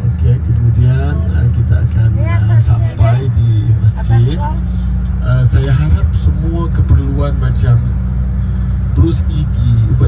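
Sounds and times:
man talking into microphone: 0.0 - 8.0, 8.9 - 10.0
bus engine rumble: 0.0 - 10.0
road noise: 0.0 - 10.0.

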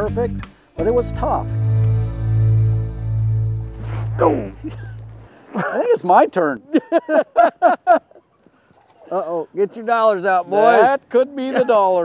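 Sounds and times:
man laughing: 4.2 - 6.1, 6.7 - 8.4, 11.4 - 12.0.

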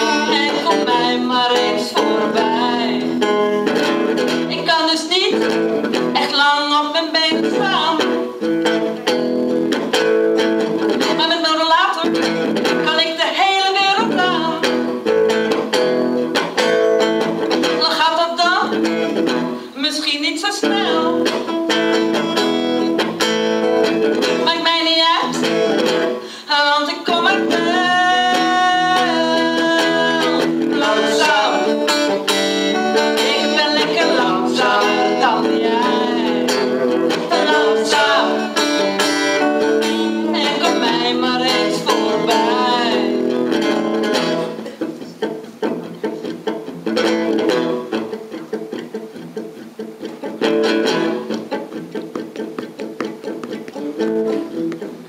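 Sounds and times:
person singing: 0.0 - 9.9, 10.8 - 15.7, 17.5 - 55.0
electric guitar through amplifier: 0.0 - 55.0.

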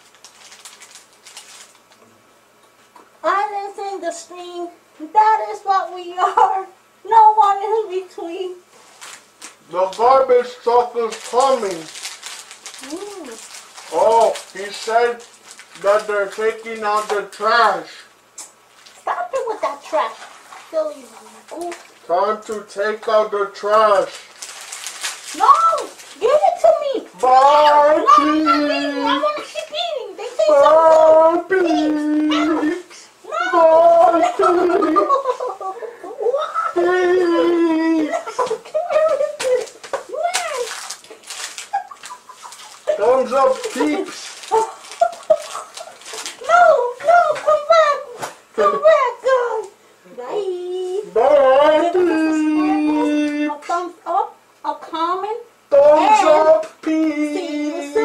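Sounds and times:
plastic wrappers crinkling: 0.0 - 2.0, 8.8 - 18.0, 18.7 - 19.1, 23.6 - 32.8, 38.3 - 47.4
person calling out: 12.8 - 14.6, 25.3 - 34.8, 36.0 - 38.2, 42.9 - 44.8, 51.0 - 53.8, 55.7 - 58.0.

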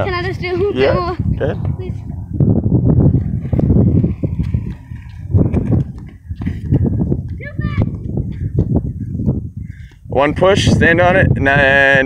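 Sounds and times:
skateboard wheels rolling on concrete: 0.0 - 12.0.

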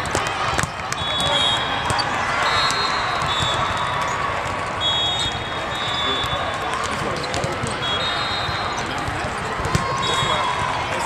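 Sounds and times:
volleyballs thumping on floor: 0.0 - 2.0, 2.6 - 3.8, 6.2 - 7.8, 9.0 - 10.7
voices of players and spectators: 0.0 - 11.0.

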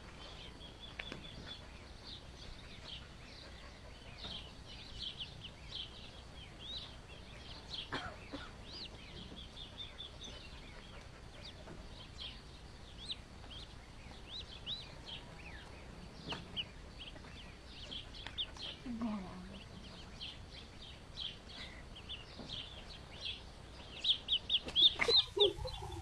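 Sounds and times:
duckling peeping: 0.1 - 26.0.

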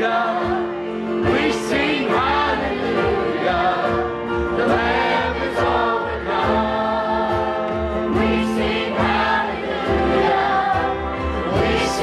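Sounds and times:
acoustic guitar: 0.0 - 12.0
group singing: 0.0 - 12.0.

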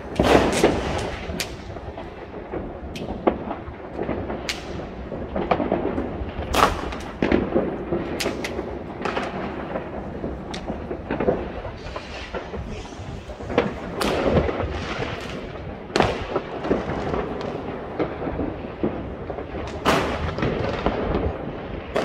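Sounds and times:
distant fireworks bangs and crackles: 0.0 - 22.0
loud firework bang: 0.0 - 22.0
sharp firework cracks: 0.0 - 22.0.

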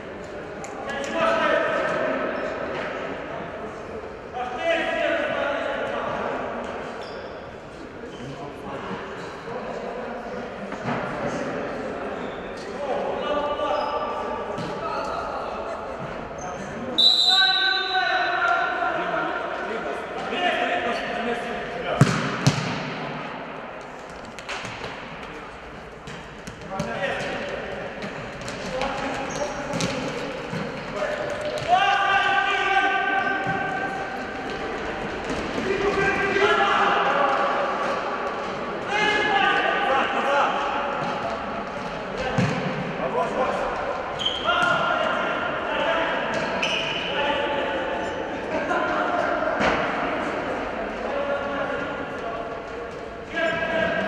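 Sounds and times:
ball kicked and bouncing: 22.0 - 22.8, 28.0 - 30.8.

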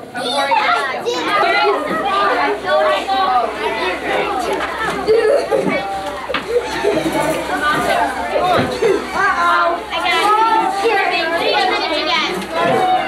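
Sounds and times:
children chattering: 0.0 - 13.0.

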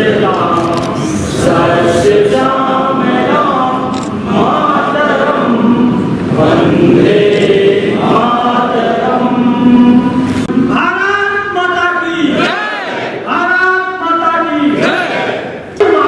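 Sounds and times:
group singing in unison: 0.0 - 10.5, 14.7 - 15.6.

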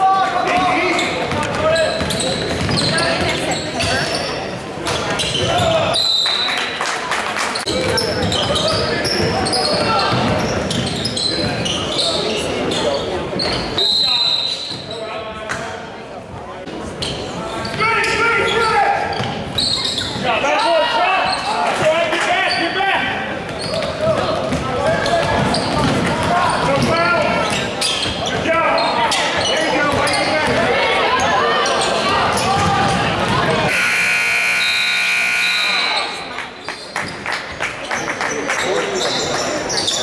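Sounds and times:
basketball bouncing on wooden floor: 1.4 - 3.3, 8.6 - 10.9, 23.5 - 26.9
scoreboard buzzer: 33.7 - 36.2.

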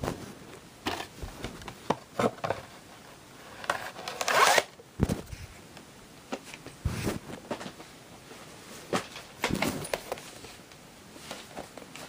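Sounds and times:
cassette rustle and scrape: 0.0 - 5.7, 6.3 - 12.0.

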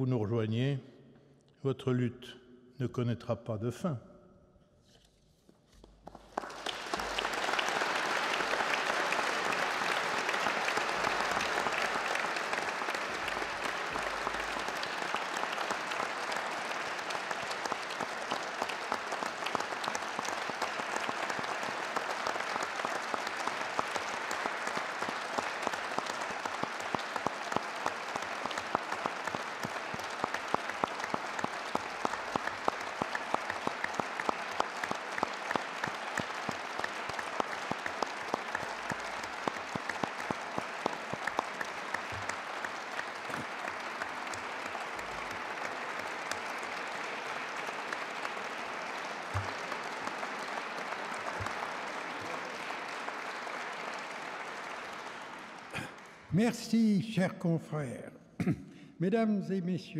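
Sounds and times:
audience applause: 6.0 - 56.9
single sharp claps: 6.1 - 53.8.

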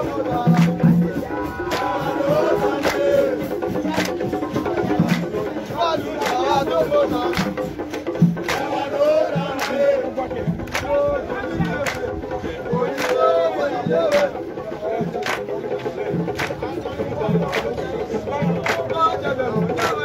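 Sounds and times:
crowd singing and shouting: 0.0 - 20.0
drums beating: 0.0 - 20.0.

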